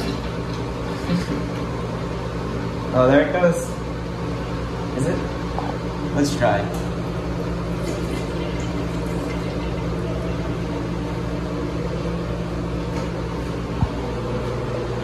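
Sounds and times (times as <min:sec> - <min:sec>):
toilet flushing: 0:00.0 - 0:01.7, 0:07.6 - 0:11.4.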